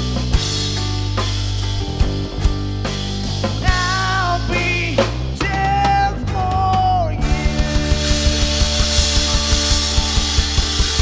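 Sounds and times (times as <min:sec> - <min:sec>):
drum kit beating fast: 0:00.0 - 0:11.0
held guitar chords: 0:00.0 - 0:11.0.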